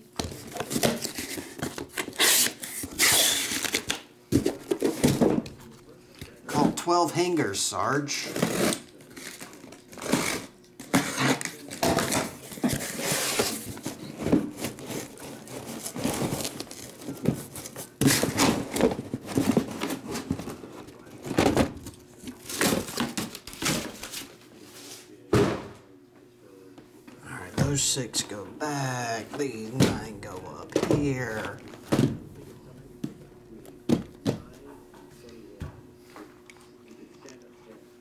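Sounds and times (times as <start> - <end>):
boxes knocking and thunking: 4.3 - 5.6, 10.8 - 24.2, 25.3 - 25.8, 27.4 - 33.2, 33.8 - 34.6
cardboard scraping and rustling: 8.3 - 25.1.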